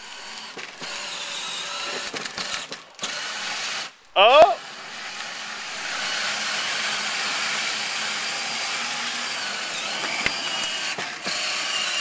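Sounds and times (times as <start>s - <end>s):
small electric motor running: 0.0s - 3.9s, 4.6s - 12.0s
plastic wheels grinding on asphalt: 0.0s - 4.0s, 4.6s - 12.0s.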